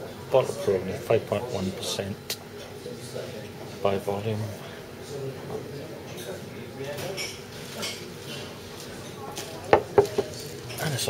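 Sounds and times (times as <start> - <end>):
low pub room noise: 0.0 - 11.0.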